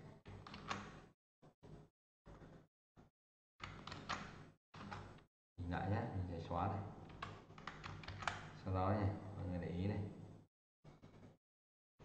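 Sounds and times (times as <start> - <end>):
man talking in low voice: 5.6 - 6.9, 8.6 - 10.2
keyboard keys clicking: 7.1 - 8.4.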